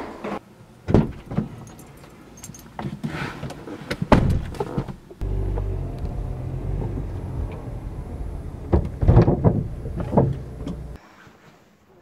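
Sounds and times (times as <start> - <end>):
car engine running: 5.2 - 11.0
loud thumps: 5.2 - 11.0.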